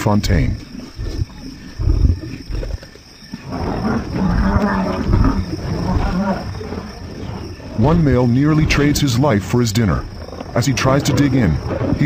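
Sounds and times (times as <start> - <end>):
lion growling: 0.0 - 12.0.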